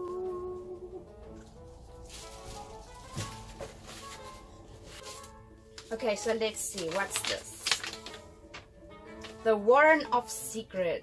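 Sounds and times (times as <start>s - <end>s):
quiet background music: 0.0s - 11.0s
paper packing rustling: 1.6s - 9.4s.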